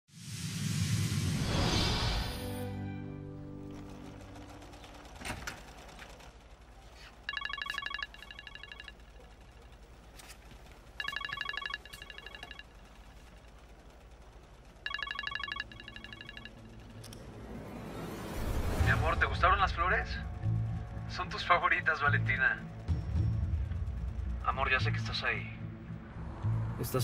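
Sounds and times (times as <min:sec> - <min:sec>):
phone ringtone trilling: 0:07.2 - 0:09.1, 0:11.0 - 0:12.8, 0:14.8 - 0:16.9.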